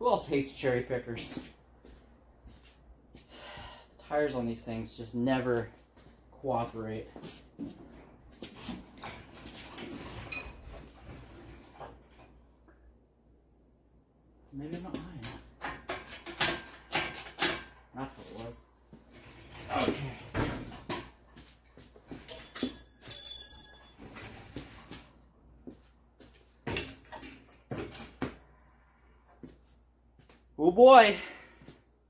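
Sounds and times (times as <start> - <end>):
metallic clinks with ringing: 22.3 - 24.2.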